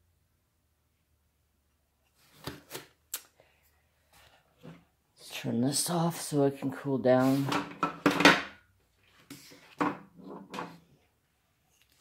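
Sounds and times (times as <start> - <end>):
objects knocking and clicking: 7.5 - 8.6, 9.7 - 10.8.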